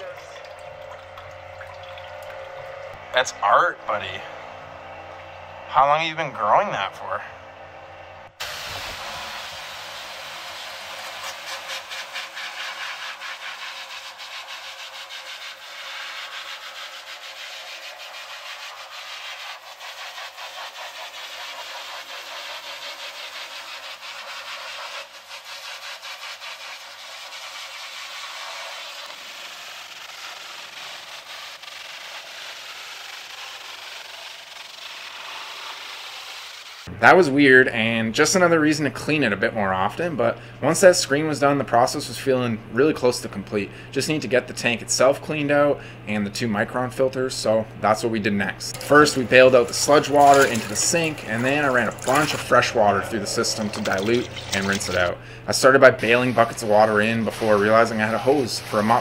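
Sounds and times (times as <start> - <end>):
pressure washer spraying metal screen: 8.4 - 36.9, 48.6 - 59.0.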